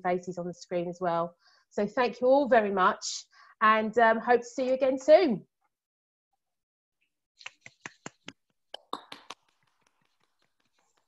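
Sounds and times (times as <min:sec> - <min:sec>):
hands clapping: 0:07.4 - 0:11.0.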